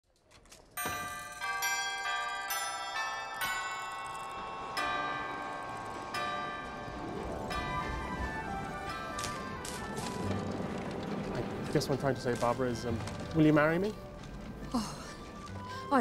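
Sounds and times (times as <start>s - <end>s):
bells chiming: 0.8s - 13.9s.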